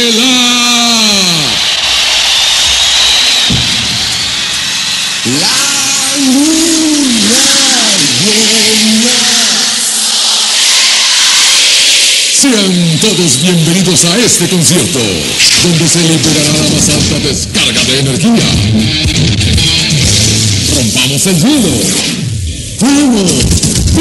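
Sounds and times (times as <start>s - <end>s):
low boom: 3.5s - 4.8s
rushing noise sweep: 3.5s - 14.0s.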